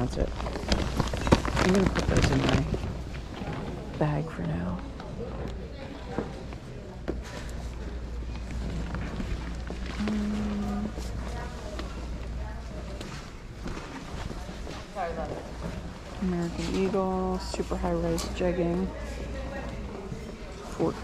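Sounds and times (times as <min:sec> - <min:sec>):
clothes rustling and knocking: 0:00.0 - 0:04.7
steady low hum: 0:00.0 - 0:21.0
background voices in a hall: 0:00.6 - 0:21.0.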